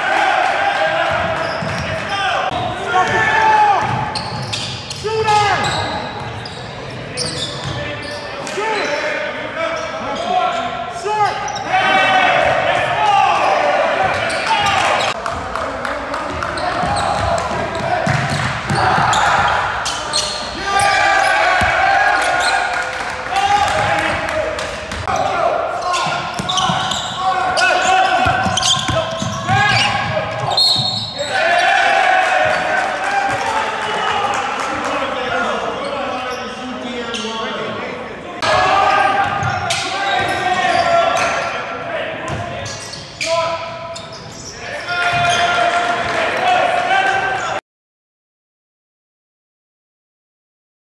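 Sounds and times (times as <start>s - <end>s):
basketball bouncing on court: 1.1s - 2.0s, 3.8s - 6.5s, 16.3s - 19.6s, 26.1s - 27.0s, 28.1s - 31.1s
sneakers squeaking on court: 1.1s - 2.6s, 3.8s - 9.0s, 16.3s - 22.7s, 24.9s - 31.4s, 35.6s - 37.6s, 39.2s - 41.5s, 42.3s - 45.6s
basketball bouncing: 3.8s - 4.6s, 16.3s - 19.6s.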